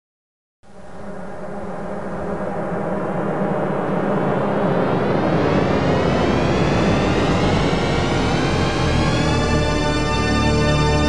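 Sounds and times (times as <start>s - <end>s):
dense rising drone: 0.7s - 11.0s.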